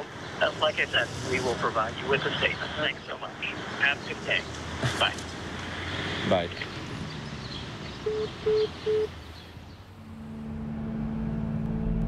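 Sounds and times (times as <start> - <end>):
city street noise: 0.0 - 12.0
mobile phone beeps: 8.0 - 9.1
low steady drone: 9.9 - 12.0.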